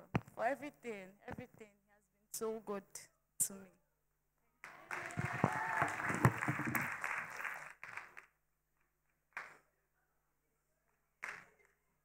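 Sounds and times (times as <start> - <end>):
congregation applauding: 4.6 - 8.4.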